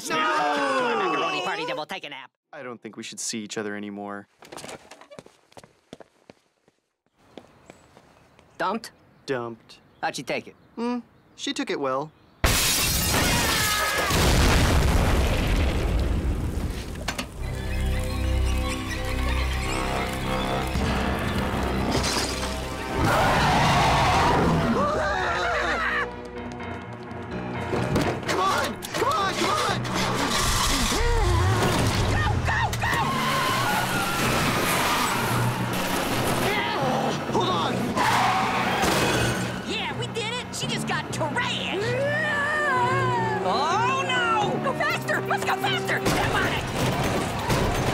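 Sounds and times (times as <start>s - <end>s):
woman yelling and shrieking: 0.0s - 1.9s, 41.9s - 44.4s
breaking and falling debris: 18.5s - 23.3s, 29.8s - 36.6s.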